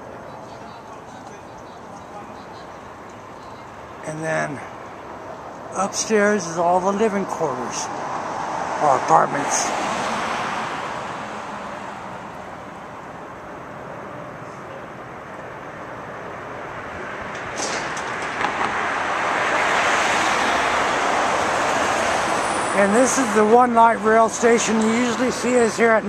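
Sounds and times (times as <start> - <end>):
street traffic noise: 0.0 - 26.0
vehicle passing: 3.8 - 26.0.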